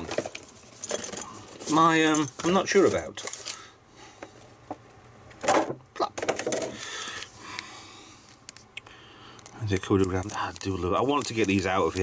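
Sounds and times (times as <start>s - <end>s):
plastic packaging crinkling: 6.8s - 12.0s.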